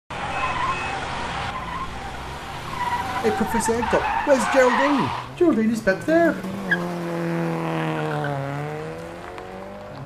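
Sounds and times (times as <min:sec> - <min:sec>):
car engine driving off: 0:00.1 - 0:10.0
tyres squealing: 0:00.2 - 0:07.1.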